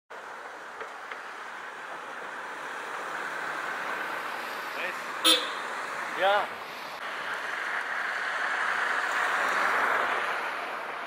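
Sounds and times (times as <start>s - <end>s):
cars driving past: 0.1s - 11.0s
car horn beep: 5.2s - 5.7s.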